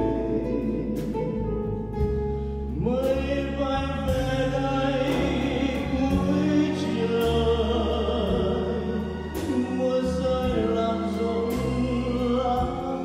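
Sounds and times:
soft drum beat: 0.0s - 7.6s, 8.2s - 11.8s, 12.5s - 13.0s.

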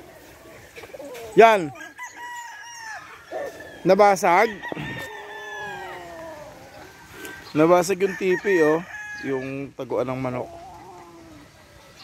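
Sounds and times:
distant roosters calling: 0.0s - 12.0s
rooster crowing: 1.6s - 9.7s.

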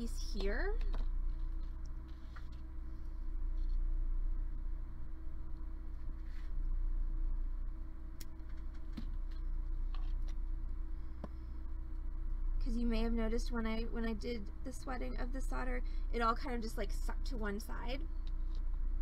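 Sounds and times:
woman's voice: 0.0s - 1.0s, 12.6s - 18.1s
steady low hum: 0.0s - 19.0s.

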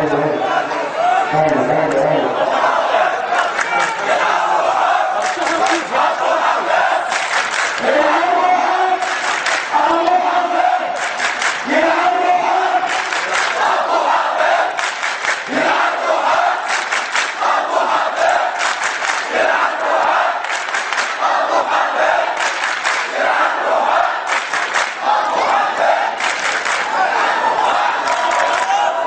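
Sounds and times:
crowd of men chanting: 0.0s - 29.0s.

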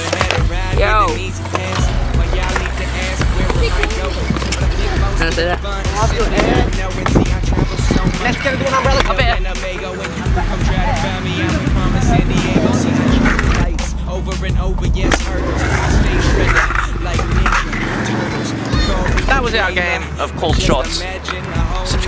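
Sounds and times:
scooter wheels rolling on concrete: 0.0s - 13.7s, 15.0s - 22.0s
music: 0.0s - 22.0s
voices: 0.0s - 22.0s.

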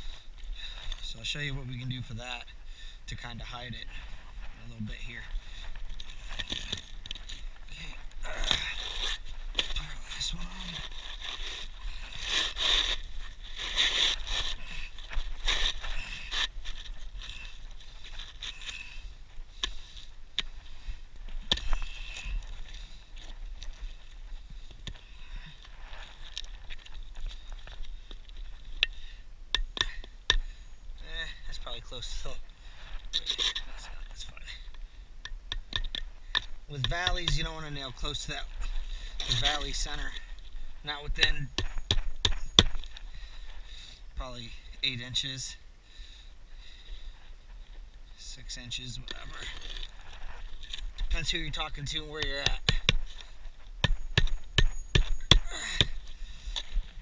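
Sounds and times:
roof shingles scraping and crunching: 3.9s - 19.1s.

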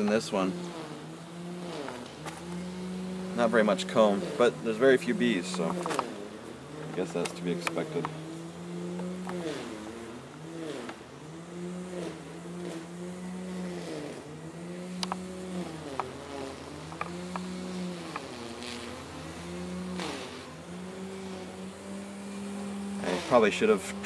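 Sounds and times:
honeybees buzzing: 0.0s - 24.0s.

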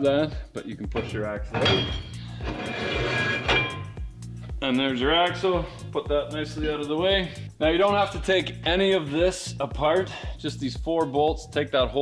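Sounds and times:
background music with beat: 0.0s - 12.0s
metal shaft scraping: 1.0s - 4.0s.

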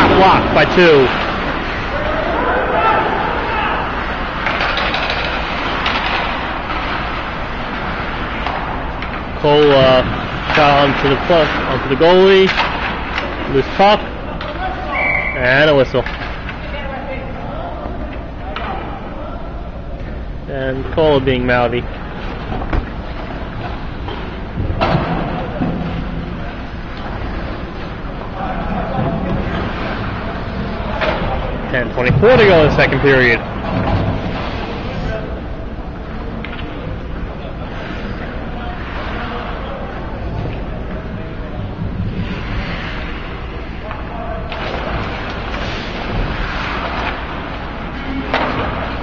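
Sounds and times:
hockey sticks working puck: 0.0s - 16.9s, 20.8s - 49.0s
arena hum: 0.0s - 49.0s
steady noisy background: 0.0s - 49.0s
skates scraping ice: 44.6s - 49.0s.

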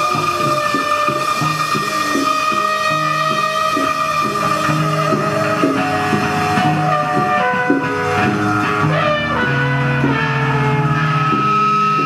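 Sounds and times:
bass guitar: 0.0s - 12.0s
trumpet playing: 0.0s - 12.0s.

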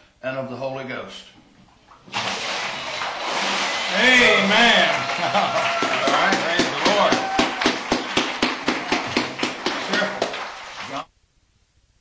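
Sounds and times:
hands clapping: 2.0s - 11.1s.

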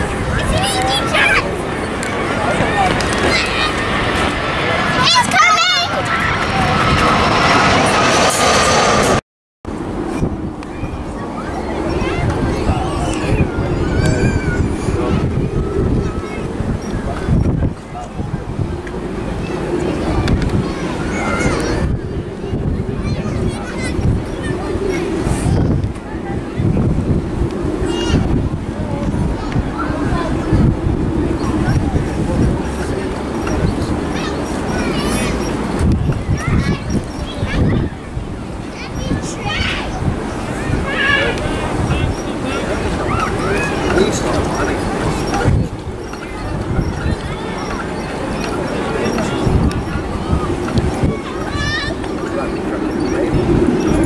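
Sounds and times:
faint voices: 0.0s - 54.0s
jet engine roar: 0.0s - 54.0s
wind buffeting microphone: 0.0s - 54.0s.

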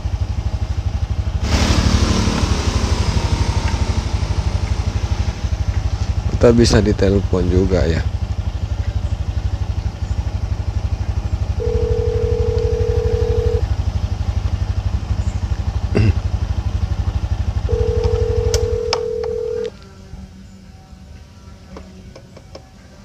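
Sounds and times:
motorcycle engine idling: 0.0s - 23.0s
phone ringback tone: 11.6s - 13.6s, 17.7s - 19.7s.

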